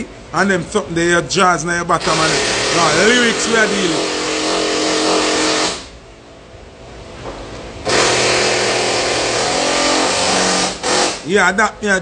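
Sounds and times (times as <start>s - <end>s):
machine motor humming and hissing: 2.0s - 5.9s, 7.9s - 11.2s.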